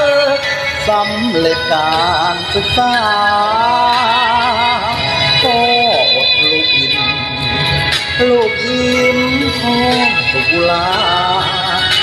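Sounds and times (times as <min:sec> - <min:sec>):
person singing: 0:00.0 - 0:07.4, 0:08.2 - 0:12.0
karaoke backing track: 0:00.0 - 0:12.0.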